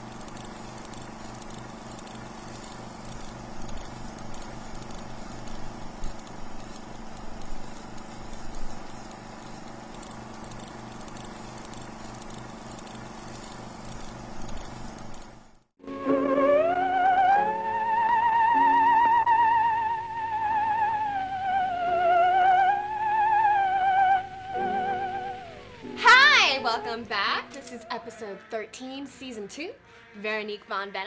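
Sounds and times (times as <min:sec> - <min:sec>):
film projector humming: 0:00.0 - 0:15.8, 0:17.8 - 0:29.7.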